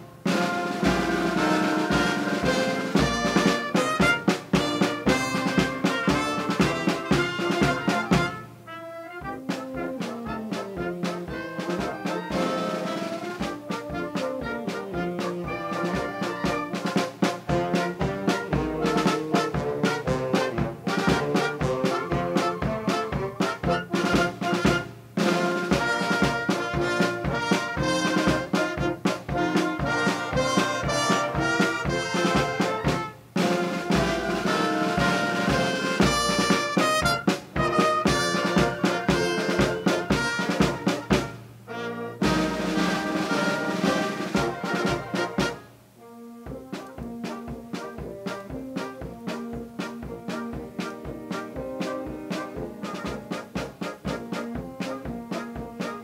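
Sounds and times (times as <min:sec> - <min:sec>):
steady drum beat: 0:00.0 - 0:56.0
wind band playing a tune: 0:00.0 - 0:56.0.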